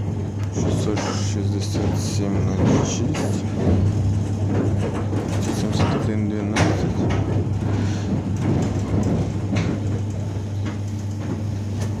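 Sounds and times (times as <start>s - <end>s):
train wheels rumbling on rails: 0.0s - 12.0s.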